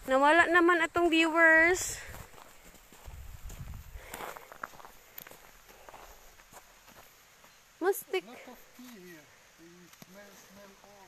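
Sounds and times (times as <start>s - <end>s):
footsteps on snow: 0.0s - 9.2s.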